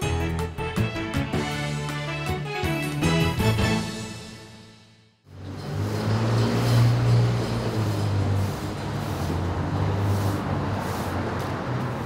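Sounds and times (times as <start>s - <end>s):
passing vehicles rushing: 5.3s - 12.0s.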